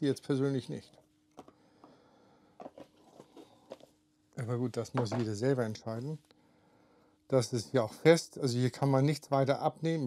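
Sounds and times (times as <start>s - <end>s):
faint steady hum: 0.0s - 10.0s
objects tapped on tabletop: 2.6s - 3.9s, 5.0s - 5.3s.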